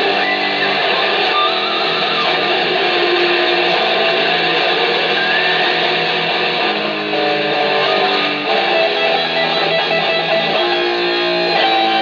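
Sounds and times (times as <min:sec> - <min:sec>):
electric guitar shredding: 0:00.0 - 0:12.0.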